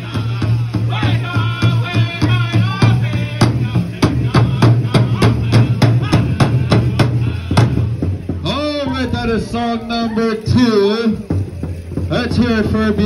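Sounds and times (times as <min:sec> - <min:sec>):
large drum beating steadily: 0:00.0 - 0:13.0
voices singing: 0:00.0 - 0:13.0.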